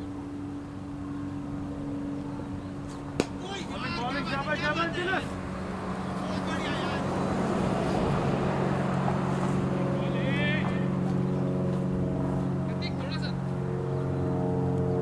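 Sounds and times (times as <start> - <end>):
engine running steadily: 0.0 - 15.0.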